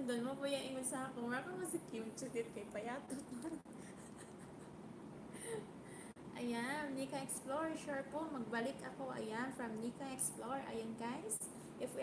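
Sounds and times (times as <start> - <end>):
woman's soft breath or laugh: 5.3 - 6.2.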